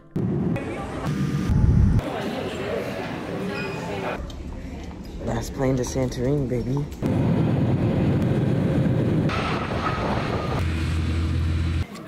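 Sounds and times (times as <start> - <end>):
deep low hum: 0.0 - 2.0
jet engine cabin drone: 0.1 - 2.1, 7.0 - 11.9.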